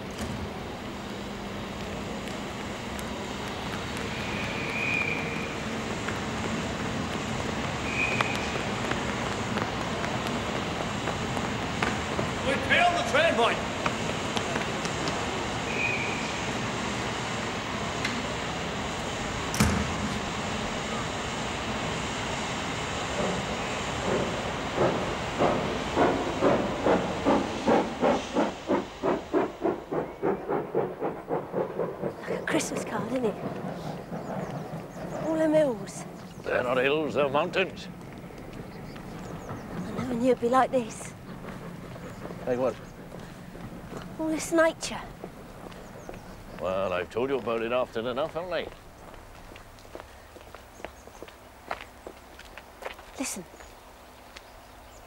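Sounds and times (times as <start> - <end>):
steam locomotive chuffing: 0.0 - 53.4
steam hissing: 0.3 - 48.6
train whistle: 4.1 - 5.6, 7.8 - 8.7, 15.6 - 16.6.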